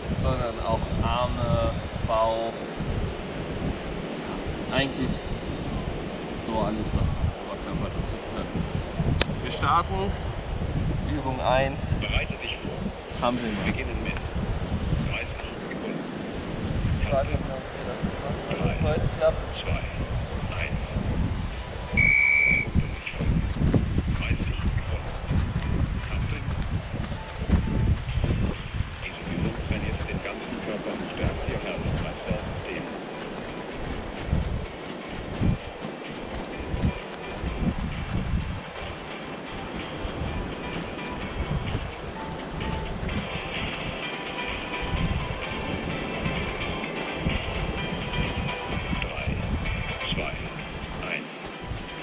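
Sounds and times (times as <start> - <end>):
wind rumbling on microphone: 0.0 - 52.0
background music: 27.1 - 52.0.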